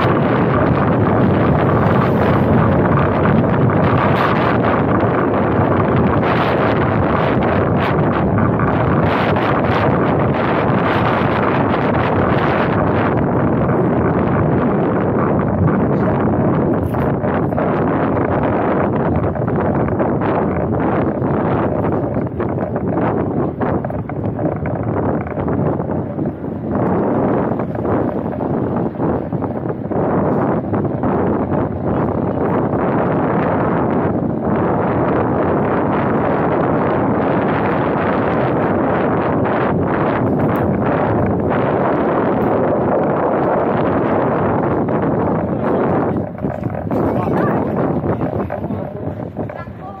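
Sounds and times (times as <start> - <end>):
wind rushing over microphone: 0.0 - 50.0.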